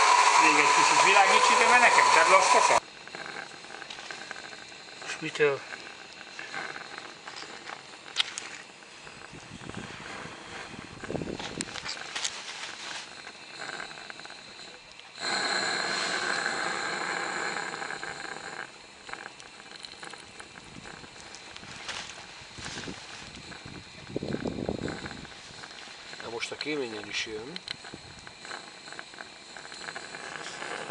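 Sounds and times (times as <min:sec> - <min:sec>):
loud hiss of steam: 0:00.0 - 0:02.9, 0:09.0 - 0:12.1, 0:15.2 - 0:18.7
steam locomotive hissing: 0:00.0 - 0:30.9.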